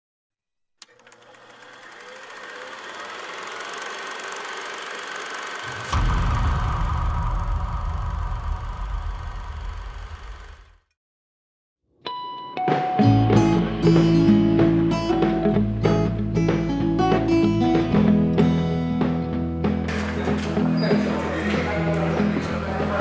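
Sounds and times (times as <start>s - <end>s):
click: 0.8s - 1.2s
swell into deep rumbling boom: 5.7s - 10.3s.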